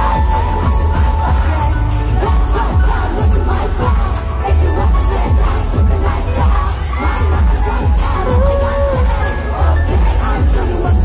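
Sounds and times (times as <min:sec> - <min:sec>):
amplified pop music with heavy bass: 0:00.0 - 0:11.0
crowd screaming and cheering: 0:00.0 - 0:11.0.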